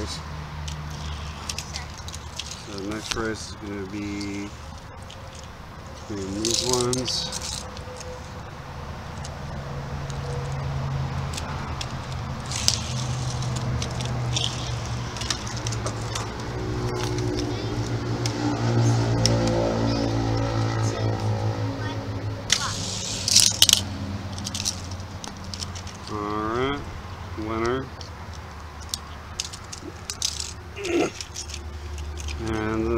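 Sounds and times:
vehicle engine hum: 0.0s - 32.9s
toy cars rattling down track: 0.9s - 3.4s, 6.1s - 8.1s, 11.3s - 17.9s, 22.5s - 23.8s, 24.4s - 26.2s, 28.8s - 32.7s.

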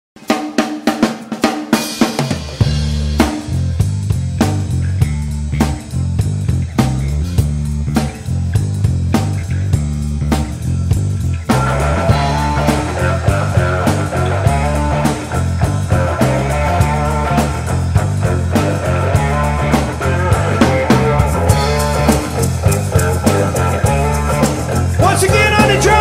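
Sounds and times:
drum kit playing: 0.2s - 26.0s
rock guitars: 0.2s - 26.0s
bass guitar groove: 1.7s - 26.0s.

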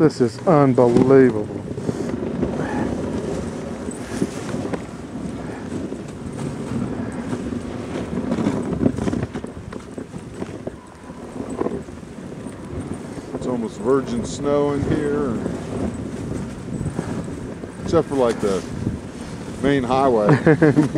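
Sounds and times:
sled runners crunching on snow: 0.0s - 20.9s
wind on microphone: 0.0s - 20.9s.

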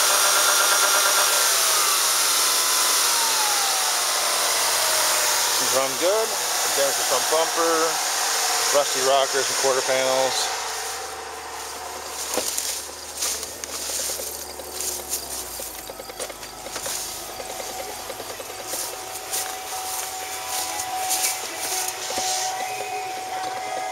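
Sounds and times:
outdoor hiss: 0.0s - 23.9s
footsteps through long grass: 8.5s - 23.8s.

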